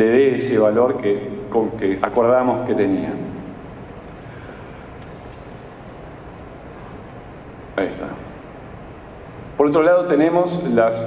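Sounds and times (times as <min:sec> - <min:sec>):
room hiss and low rumble: 0:00.0 - 0:11.0.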